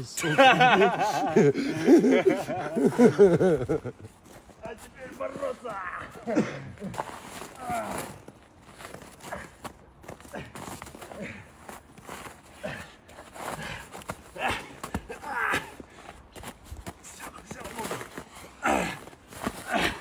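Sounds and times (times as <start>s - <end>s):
feet scuffling in snow: 4.0s - 15.0s, 16.4s - 20.0s.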